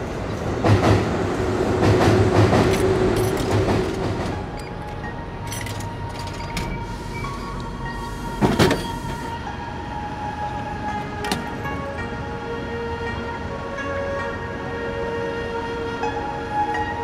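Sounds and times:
background music: 0.6 - 17.0.

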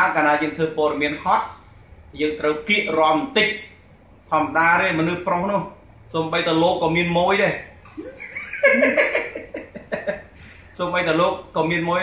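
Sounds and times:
person laughing: 8.0 - 10.2.

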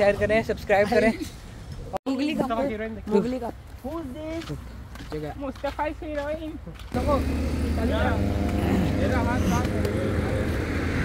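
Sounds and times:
cars passing on road: 4.5 - 11.0.

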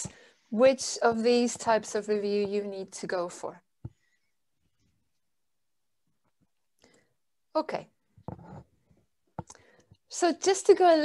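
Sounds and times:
woman breathing: 0.0 - 0.5, 9.4 - 10.0.

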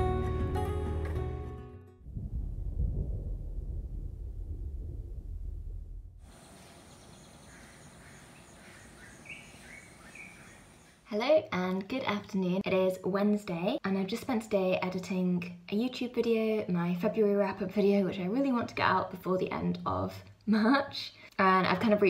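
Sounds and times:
guitar song: 0.0 - 2.0
short bird chirps: 6.3 - 11.0.

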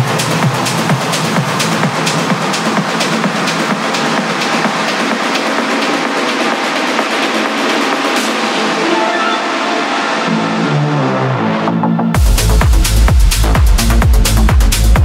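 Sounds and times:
low synth riff: 8.5 - 11.1.

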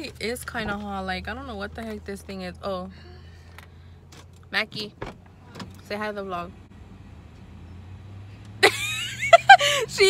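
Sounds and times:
low hum in car cabin: 0.0 - 10.0.

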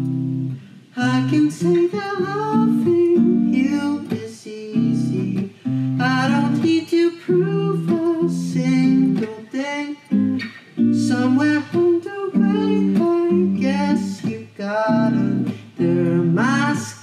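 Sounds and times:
acoustic guitar chords: 0.0 - 17.0
young man singing: 0.9 - 17.0.

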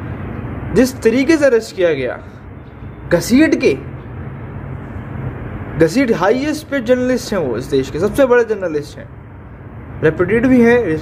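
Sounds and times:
low background hum and rumble: 0.0 - 11.0
man talking: 3.1 - 4.0, 5.8 - 9.1, 10.0 - 11.0.

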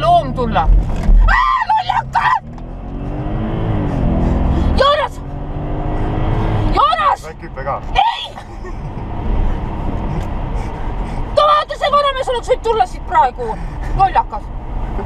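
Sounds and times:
car engine accelerating: 0.0 - 15.0.

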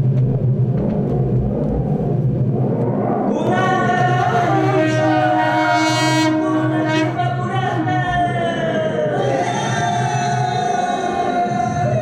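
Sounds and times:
low rumbling drone: 0.0 - 12.0
long horn held note: 4.2 - 7.4.

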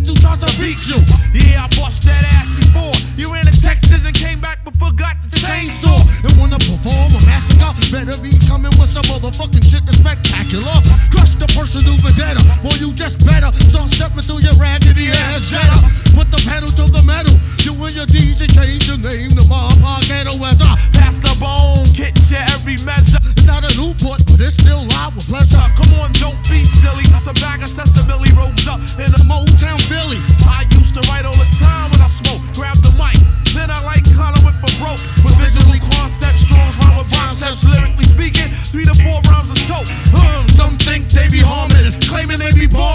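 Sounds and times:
heavy bass pulse: 0.0 - 42.9
rapping over a beat: 0.0 - 42.9.

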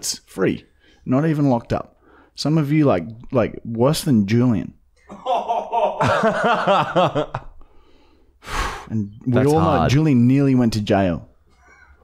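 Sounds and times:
men laughing: 5.1 - 7.6
loud breath: 7.6 - 9.0.

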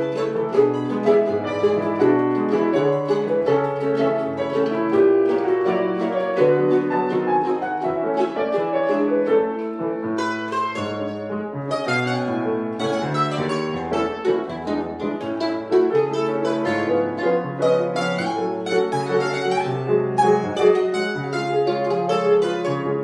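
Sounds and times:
grand piano playing chords: 0.0 - 23.0
plucked mandolin notes: 0.0 - 23.0.

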